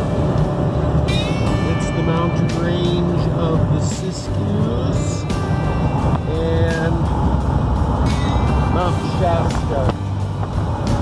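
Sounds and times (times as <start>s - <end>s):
road and engine rumble: 0.0s - 11.0s.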